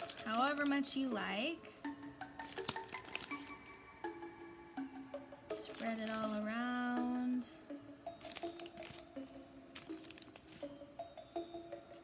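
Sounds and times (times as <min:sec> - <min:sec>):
plastic bag crinkling: 0:00.0 - 0:01.1, 0:02.4 - 0:03.6, 0:05.6 - 0:06.4, 0:08.2 - 0:10.7
soft background music: 0:00.0 - 0:12.0.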